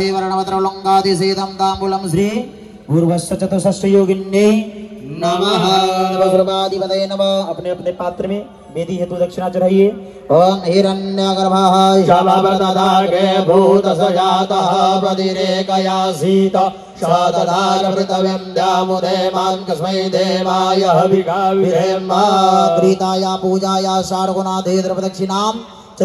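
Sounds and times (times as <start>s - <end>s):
man chanting: 0.0s - 26.0s.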